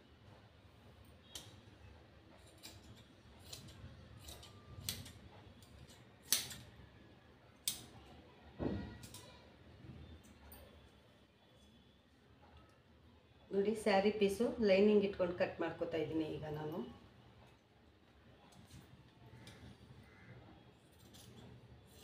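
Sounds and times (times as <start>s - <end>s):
scissors snipping cloth: 2.4s - 6.7s.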